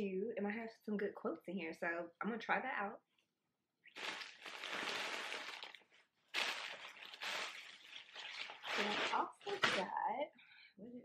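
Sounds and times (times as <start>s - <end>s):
plastic packaging crinkling: 3.9s - 9.9s.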